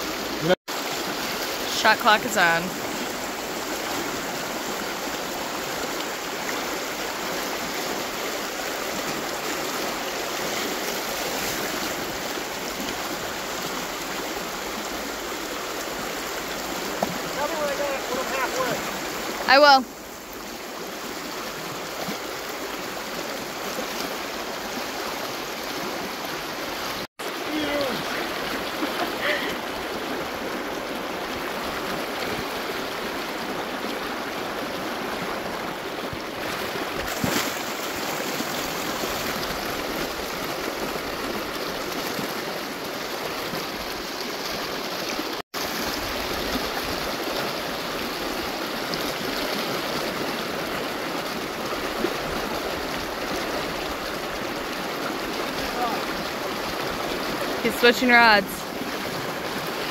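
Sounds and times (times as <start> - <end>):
river rushing over rocks: 0.0 - 59.9.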